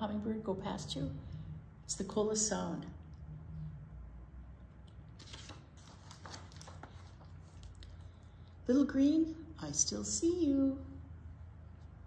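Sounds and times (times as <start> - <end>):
paper pages turning: 5.2 - 8.2.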